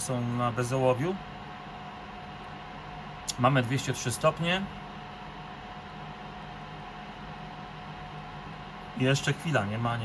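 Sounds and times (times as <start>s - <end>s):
machine low hum: 0.0s - 10.0s.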